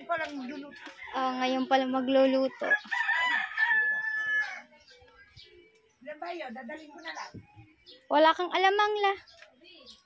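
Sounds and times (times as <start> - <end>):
rooster crowing: 2.6 - 4.7.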